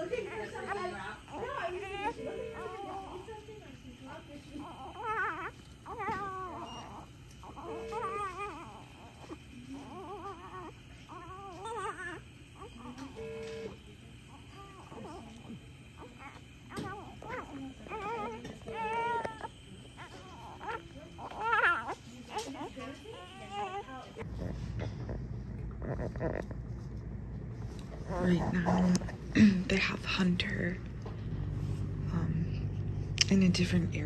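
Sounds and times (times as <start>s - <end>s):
newborn baby crying: 0.0s - 3.4s, 4.6s - 13.4s, 14.5s - 24.0s.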